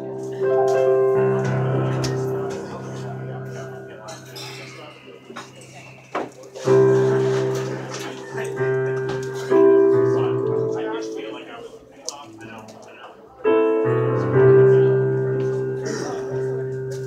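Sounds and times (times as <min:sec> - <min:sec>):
slow folk ballad on keyboard: 0:00.0 - 0:04.3, 0:06.6 - 0:12.8, 0:13.5 - 0:17.0.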